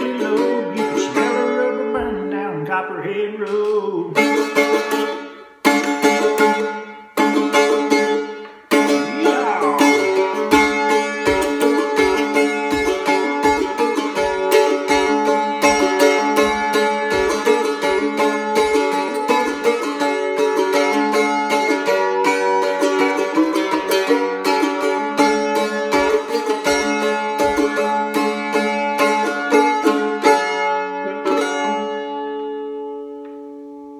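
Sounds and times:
mandolin playing: 0.0 - 33.9.

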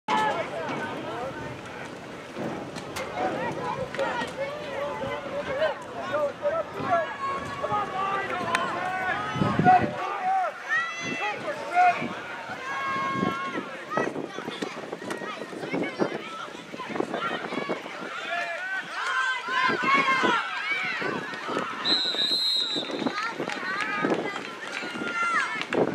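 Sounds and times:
spectators yelling and cheering: 0.1 - 25.9
voices talking and calling out: 0.1 - 25.9
referee whistle blast: 21.8 - 23.1.

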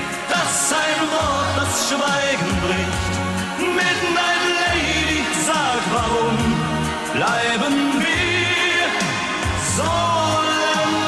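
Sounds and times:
pop song by a band: 0.0 - 11.0.

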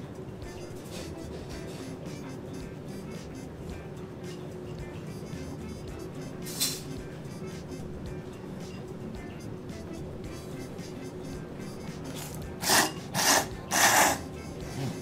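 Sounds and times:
background music: 0.0 - 15.0
loud slurps of noodles: 12.6 - 14.2.

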